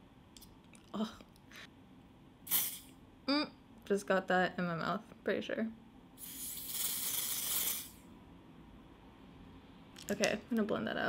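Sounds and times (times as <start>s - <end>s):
aerosol can spraying: 2.5s - 2.8s, 6.2s - 8.0s.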